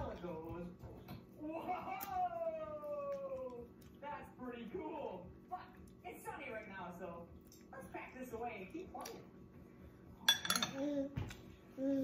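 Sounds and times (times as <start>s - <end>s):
metal spoon clinking on plate: 10.2s - 10.8s.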